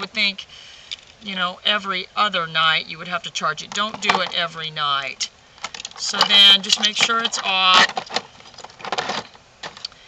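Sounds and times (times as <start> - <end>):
small knocks: 3.7 - 4.4.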